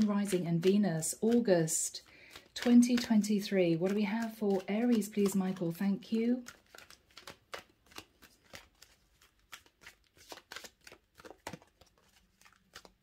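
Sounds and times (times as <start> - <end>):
cards being shuffled: 0.0 - 13.0.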